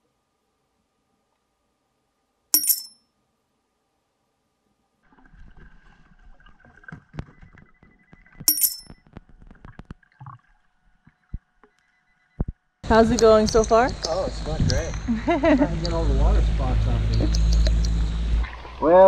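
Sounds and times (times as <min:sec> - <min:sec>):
bright high chimes: 0:02.6 - 0:03.0, 0:08.5 - 0:08.9
muffled underwater digging clicks: 0:17.1 - 0:18.0.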